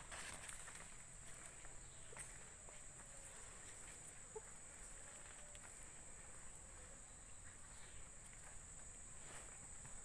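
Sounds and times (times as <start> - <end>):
faint ticks and rustles: 0.0 - 10.0.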